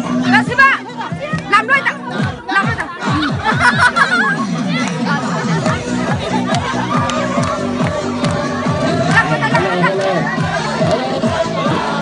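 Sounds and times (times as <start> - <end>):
children chattering and calling out: 0.0 - 12.0
music with fast low beat: 0.0 - 12.0.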